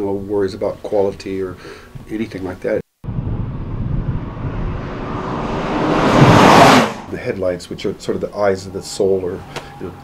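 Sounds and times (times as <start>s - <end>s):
sports car engine passing by: 3.1s - 7.3s.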